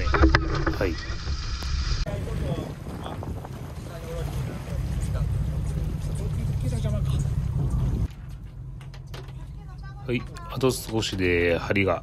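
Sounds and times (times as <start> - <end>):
wind on microphone: 0.0 - 4.7, 7.2 - 8.1
boat engine rumbling: 0.0 - 12.0.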